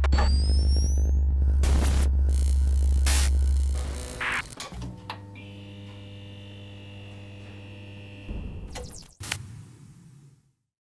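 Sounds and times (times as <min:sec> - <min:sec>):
glitchy crackles: 0:00.0 - 0:04.7
buzzing electronic hum: 0:00.0 - 0:09.2.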